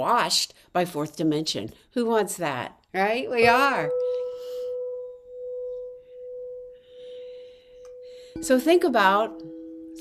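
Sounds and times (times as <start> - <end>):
singing bowl ringing: 3.4 - 10.0.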